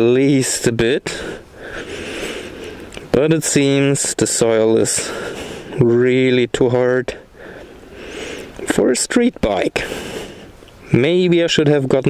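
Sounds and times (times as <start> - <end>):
person breathing close to microphone: 1.1 - 3.0, 5.0 - 5.8, 7.2 - 8.6, 9.8 - 10.6.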